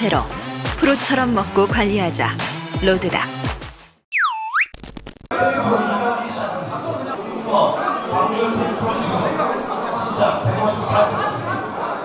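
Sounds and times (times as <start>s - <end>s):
crowd chatter in a large hall: 5.3s - 12.0s.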